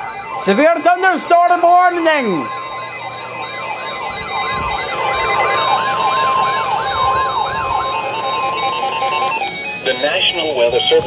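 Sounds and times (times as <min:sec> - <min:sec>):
electronic siren sweeping: 0:00.0 - 0:11.0
steady warning tone: 0:00.0 - 0:11.0.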